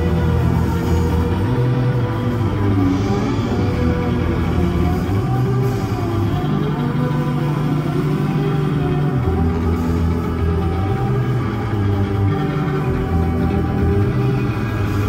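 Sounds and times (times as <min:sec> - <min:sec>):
live band playing droning piece: 0:00.0 - 0:15.0.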